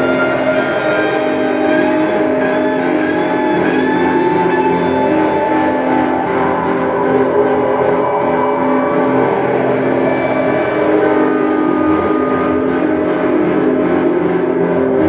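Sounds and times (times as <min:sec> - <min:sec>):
guitars playing ringing drone: 0:00.0 - 0:15.0.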